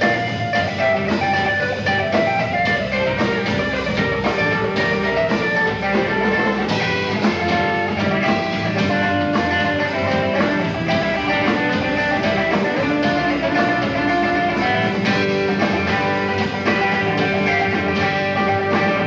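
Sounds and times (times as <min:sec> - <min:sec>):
amplified electric guitar: 0:00.0 - 0:19.0
live band music: 0:00.0 - 0:19.0.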